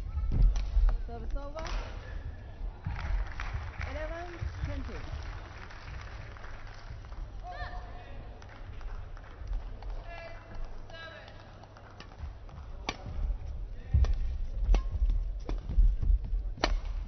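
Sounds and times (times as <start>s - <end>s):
racket hitting shuttlecock: 12.8s - 13.4s, 14.0s - 16.0s, 16.6s - 17.0s.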